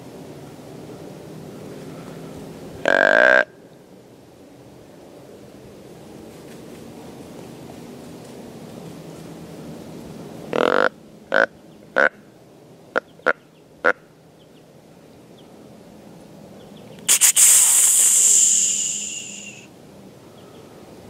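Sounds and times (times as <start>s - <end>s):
deer call snort-wheeze: 17.1s - 19.7s
nasal deer call blasts: 17.1s - 19.7s.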